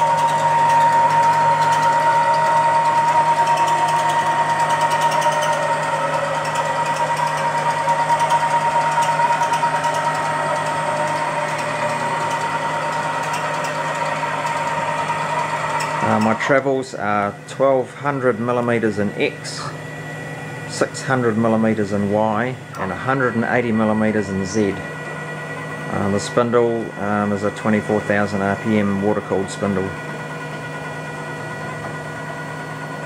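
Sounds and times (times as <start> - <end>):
stepper motors high whine: 0.0 - 33.0.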